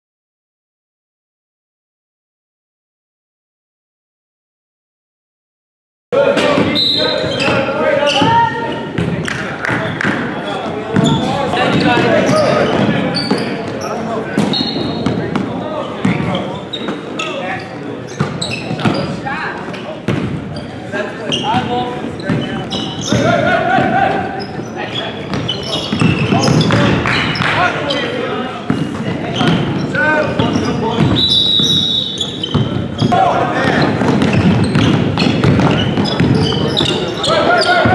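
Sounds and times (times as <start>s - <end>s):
voices and shouts echoing: 6.2s - 37.9s
basketballs bouncing on hardwood: 14.4s - 16.4s, 20.1s - 20.4s, 21.3s - 24.0s, 25.3s - 27.5s, 28.7s - 31.8s, 32.4s - 37.9s.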